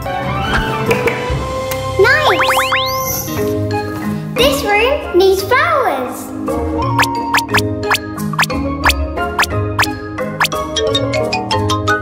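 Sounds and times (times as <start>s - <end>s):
light background music: 0.0s - 12.0s
rising cartoon whistle glides: 2.1s - 3.4s, 7.0s - 9.9s.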